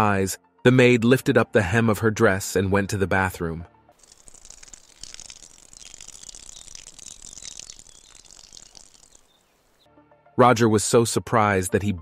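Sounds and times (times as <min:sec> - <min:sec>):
urine stream splattering on grass: 0:04.0 - 0:09.9.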